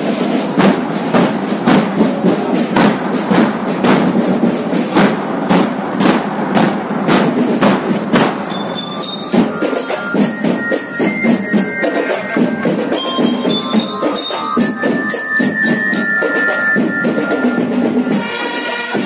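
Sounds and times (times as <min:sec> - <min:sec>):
drumline playing: 0:00.0 - 0:19.0
bell lyre melody: 0:08.4 - 0:18.4.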